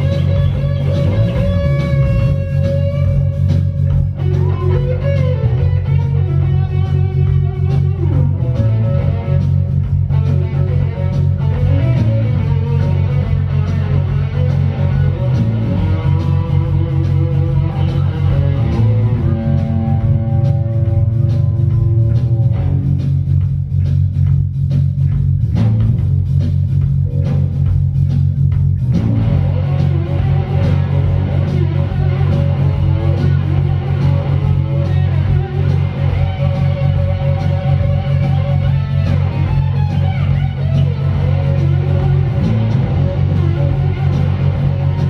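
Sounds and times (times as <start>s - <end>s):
bass guitar: 0.0s - 45.0s
drums: 0.0s - 45.0s
electric guitar: 0.0s - 45.0s.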